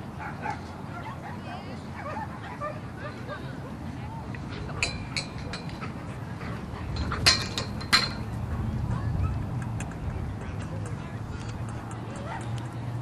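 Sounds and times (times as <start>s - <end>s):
faint voices: 0.0s - 13.0s.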